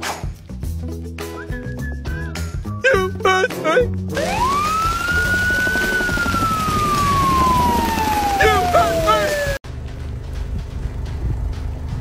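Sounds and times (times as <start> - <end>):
siren winding up and falling: 4.2 - 9.6
low rumble: 9.6 - 12.0.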